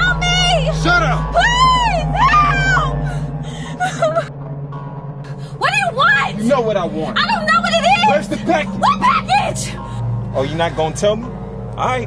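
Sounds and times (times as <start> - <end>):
low music drone: 0.0 - 12.0
woman whimpering: 2.2 - 4.3
woman gasping: 3.0 - 4.3.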